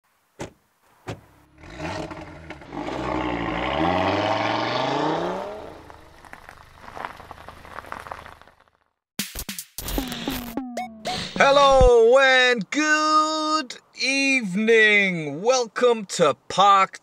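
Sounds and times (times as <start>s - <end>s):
car engine starting and revving: 1.3s - 8.4s.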